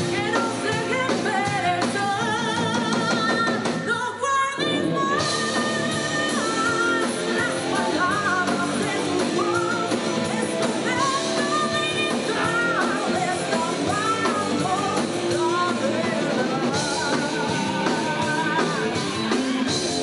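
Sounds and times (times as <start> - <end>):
distorted electric guitars: 0.0 - 4.0, 4.6 - 20.0
woman singing lead vocal: 0.0 - 19.3
drum kit: 0.0 - 20.0.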